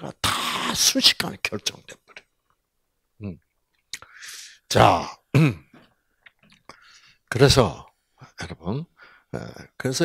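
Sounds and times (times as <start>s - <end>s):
man clearing throat: 0.1s - 0.9s, 5.4s - 5.8s.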